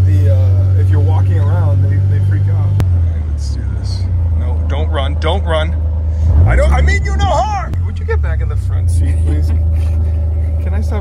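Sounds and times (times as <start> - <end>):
vehicle engine droning: 0.0 - 11.0.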